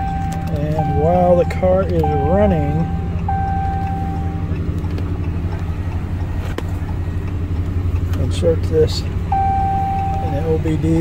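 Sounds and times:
steady high tone: 0.0 - 4.6
pickup engine idling: 0.0 - 11.0.

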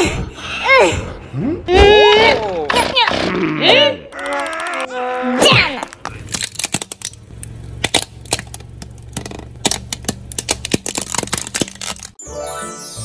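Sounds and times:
plastic toys cracking under tyre: 5.7 - 12.2
low steady hum: 5.8 - 12.2.

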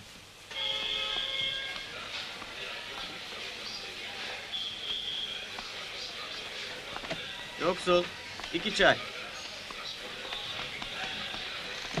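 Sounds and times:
faint voices: 0.6 - 12.0
footsteps on tiled floor: 0.7 - 3.2, 8.0 - 12.0.

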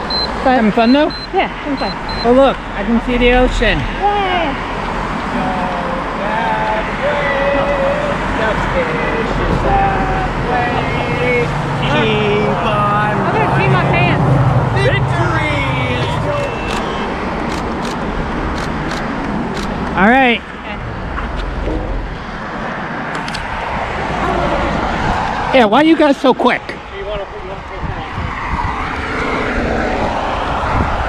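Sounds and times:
people talking and calling out: 0.0 - 22.3, 23.4 - 28.5
road traffic: 0.0 - 31.0
low rumble of passing vehicle: 2.0 - 26.0
sharp ticks: 16.6 - 20.0.

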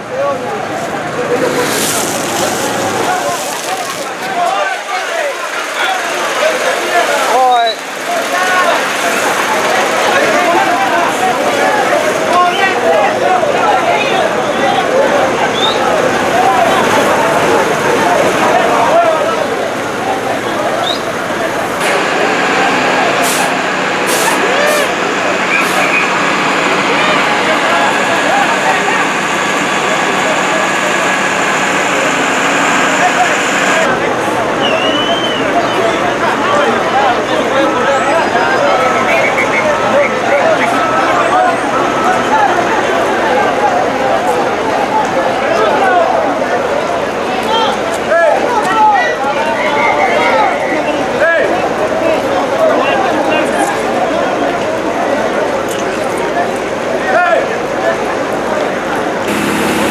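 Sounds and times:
crowd calling and shouting: 0.0 - 59.9
steady rushing noise: 59.2 - 59.9.

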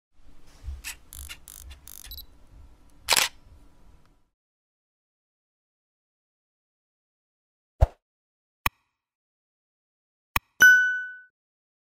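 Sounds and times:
camera shutter click: 0.8 - 2.2, 3.1 - 3.4
camera mechanism whirring: 0.8 - 2.3, 3.1 - 3.4.

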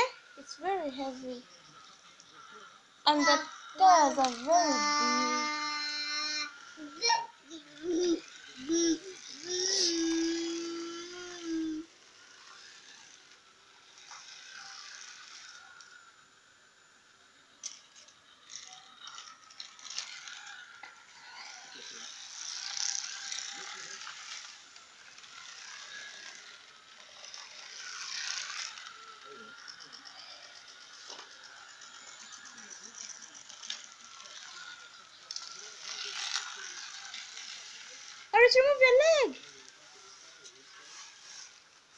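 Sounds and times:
toy car rattling buzz on plastic track: 0.0 - 41.9.

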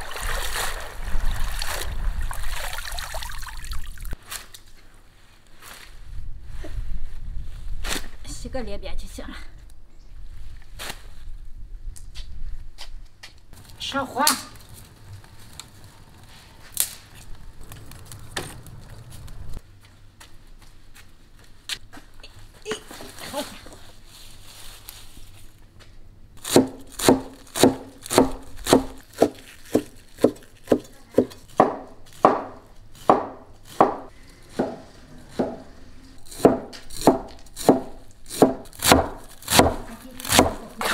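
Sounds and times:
sharp branch crack: 16.7 - 19.4
twigs snapping: 16.7 - 19.4
rustling: 20.6 - 26.0
cleaver chopping on wooden table: 26.5 - 34.8, 36.3 - 40.6.

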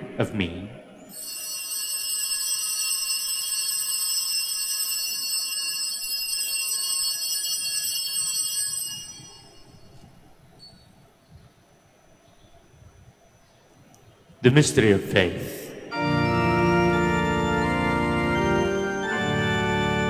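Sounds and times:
altar bells ringing: 1.1 - 10.9, 15.9 - 20.0.

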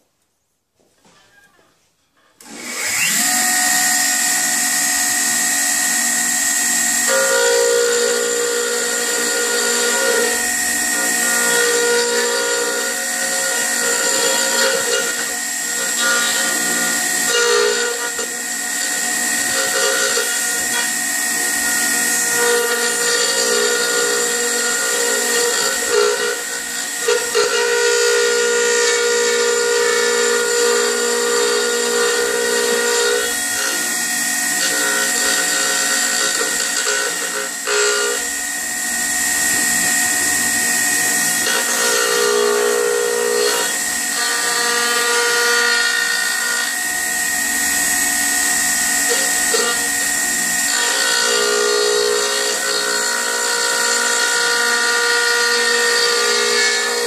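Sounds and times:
wood router motor whining: 2.3 - 57.0
router bit cutting wood: 2.4 - 57.0.

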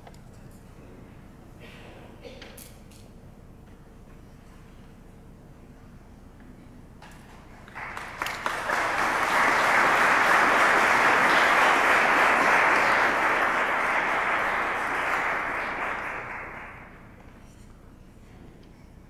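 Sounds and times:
audience applauding: 7.6 - 17.2.

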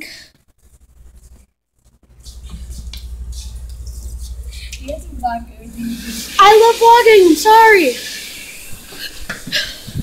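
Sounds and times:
low hum: 2.0 - 6.9
drinking fountain water stream: 4.7 - 9.3.

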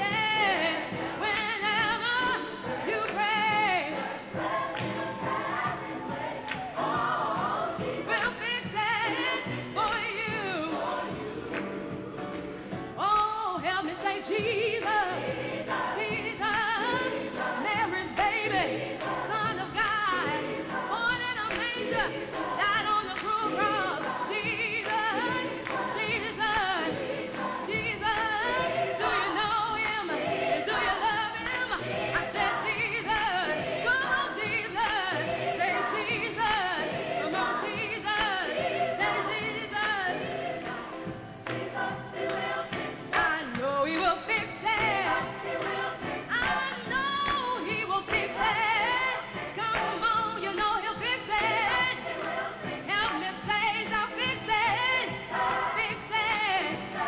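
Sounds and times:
choir singing gospel: 0.0 - 57.0.

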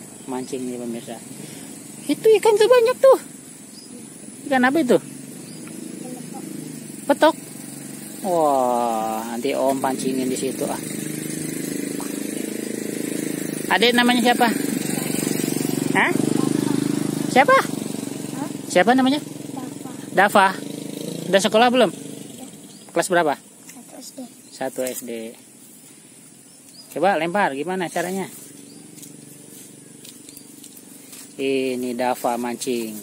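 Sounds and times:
distant motor hum: 0.0 - 33.0
insects hissing: 0.0 - 33.0
small engine running: 0.0 - 33.0.

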